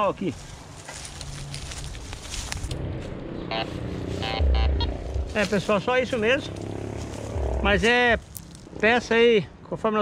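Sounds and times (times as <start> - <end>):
brush rustling: 0.0 - 9.0
metal detector beeps: 3.5 - 4.9
low wind rumble on microphone: 6.5 - 8.9.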